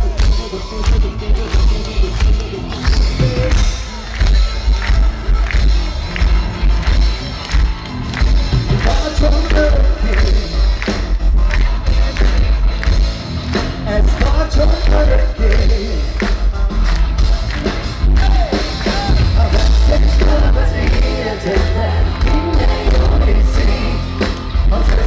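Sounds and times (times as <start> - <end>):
heavy bass: 0.0 - 25.0
live rock band playing: 0.0 - 25.0
steady drumbeat: 0.0 - 25.0
person singing: 8.7 - 10.8, 18.2 - 25.0.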